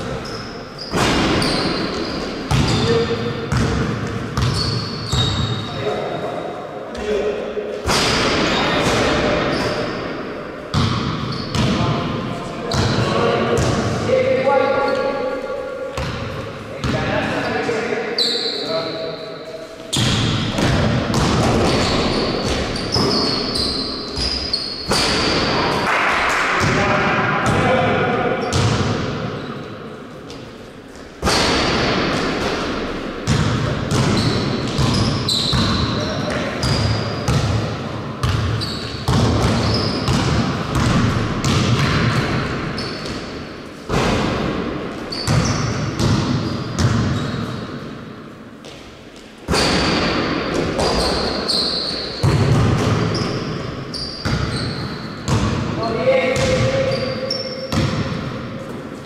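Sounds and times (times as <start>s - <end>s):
shoes squeaking on court: 0.0s - 3.8s, 4.4s - 7.0s, 9.4s - 10.1s, 10.7s - 11.7s, 14.8s - 16.9s, 17.5s - 20.6s, 21.2s - 25.2s, 33.3s - 37.5s, 38.2s - 40.9s, 42.6s - 43.5s, 44.9s - 47.8s, 50.8s - 52.4s, 53.0s - 55.5s, 56.3s - 59.0s
basketball bouncing on wooden floor: 3.5s - 5.6s, 10.7s - 11.8s, 20.0s - 23.3s, 33.2s - 37.6s, 38.2s - 43.2s, 43.9s - 47.3s, 52.2s - 53.4s, 54.2s - 55.6s, 56.4s - 56.9s, 57.7s - 58.2s
players' voices: 11.6s - 23.1s, 25.5s - 29.1s, 55.6s - 57.5s.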